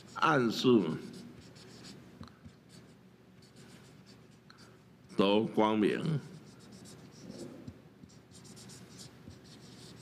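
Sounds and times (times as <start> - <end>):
marker scratching on paper: 0.0 - 4.4, 6.1 - 10.0.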